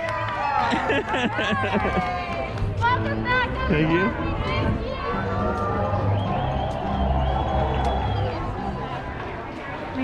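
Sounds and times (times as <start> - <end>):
people calling out and talking: 0.0 - 10.0.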